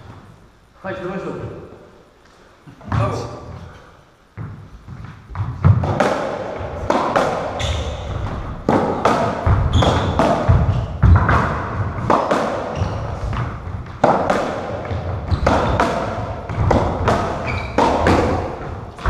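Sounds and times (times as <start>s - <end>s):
ball hitting rackets and walls: 4.3s - 19.0s
shoes squeaking on floor: 6.6s - 13.8s, 14.9s - 19.0s.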